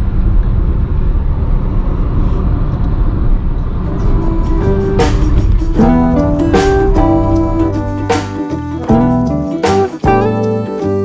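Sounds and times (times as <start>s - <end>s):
car interior road rumble: 0.0s - 9.2s.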